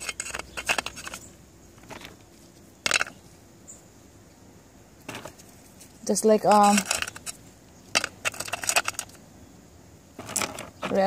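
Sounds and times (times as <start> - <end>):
rocks clicking and scraping: 0.0 - 3.3, 5.0 - 9.2, 10.2 - 11.0.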